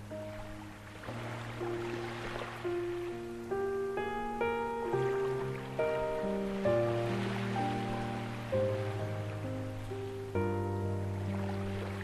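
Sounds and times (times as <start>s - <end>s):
ocean waves: 0.0s - 12.0s
slow ambient piano music: 0.0s - 12.0s.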